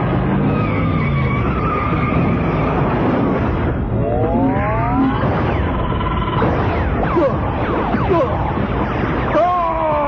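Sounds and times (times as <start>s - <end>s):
sci-fi machinery rumble: 0.0s - 7.7s.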